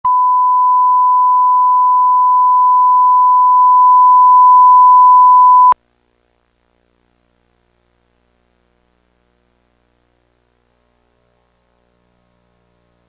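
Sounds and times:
steady test tone: 0.0 - 5.8.

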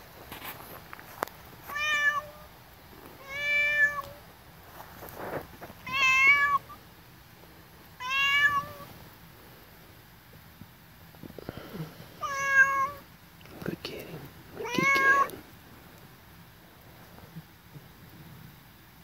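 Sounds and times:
cat meowing: 1.7 - 2.5, 3.2 - 4.2, 5.8 - 6.8, 8.0 - 8.9, 12.2 - 13.1, 14.6 - 15.4.

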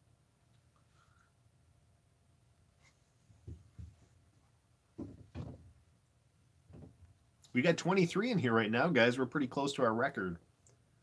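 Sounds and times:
soft puffs on tobacco pipe: 0.6 - 1.5.

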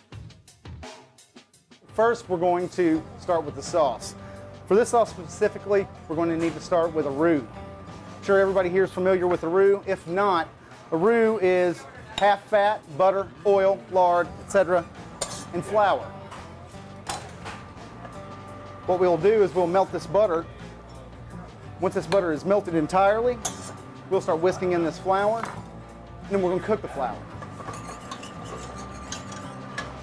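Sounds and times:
soft background music: 1.7 - 30.0
whisk scraping a metal saucepan: 15.2 - 15.8, 23.4 - 23.9, 27.0 - 30.0
kitchen utensils clinking: 15.2 - 17.7, 23.4 - 23.8, 25.3 - 25.7, 27.3 - 30.0.

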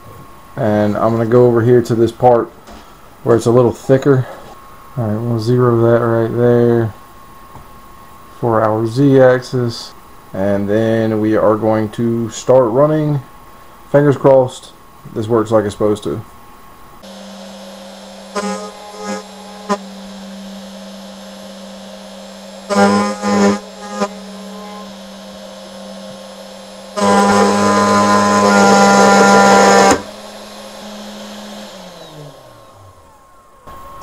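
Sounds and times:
router spindle whining: 17.0 - 34.0
spindle winding down: 17.0 - 34.0
loud screech: 17.1 - 30.1
end mill squealing cutting metal: 17.1 - 34.0.

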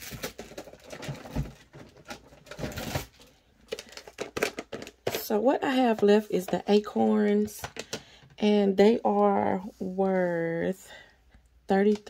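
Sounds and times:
hands rummaging through markers: 0.0 - 8.2.

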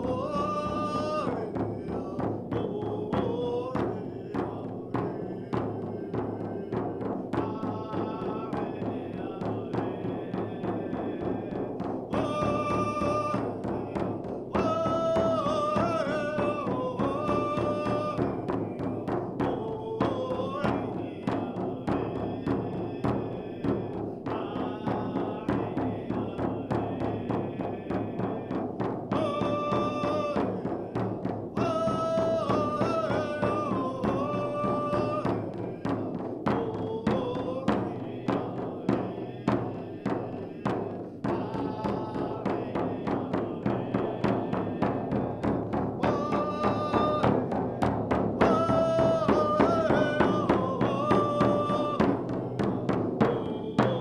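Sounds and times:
hand drum beating: 0.0 - 54.0
man singing a chant: 0.0 - 54.0.

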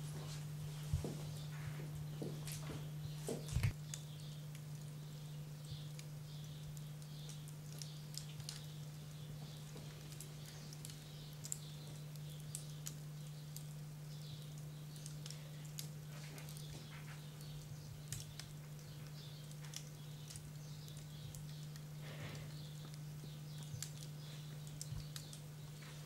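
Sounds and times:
faint low hum: 0.0 - 26.0
light clicks and ticks: 5.6 - 26.0.

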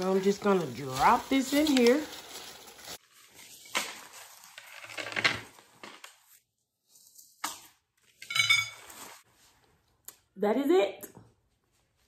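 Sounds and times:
rustling plastic leaves and stems: 0.0 - 6.3.

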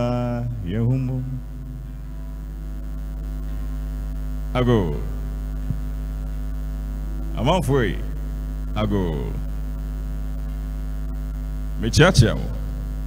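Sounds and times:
electrical mains hum: 0.0 - 13.0
voice gliding phrases: 4.5 - 5.3, 7.1 - 9.5.

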